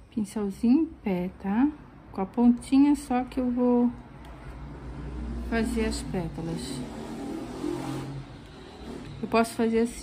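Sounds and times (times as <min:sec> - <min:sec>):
motor vehicle humming: 0:03.6 - 0:10.0.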